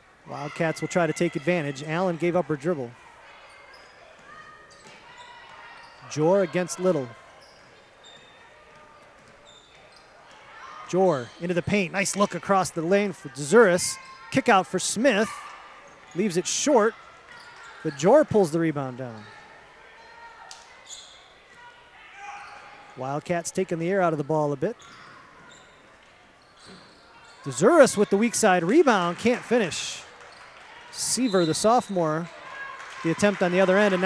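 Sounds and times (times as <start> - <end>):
echoing crowd voices: 0.0 - 34.0
sneakers squeaking on floor: 3.4 - 12.3, 15.0 - 18.4, 19.1 - 22.9, 24.7 - 28.8, 30.3 - 32.0.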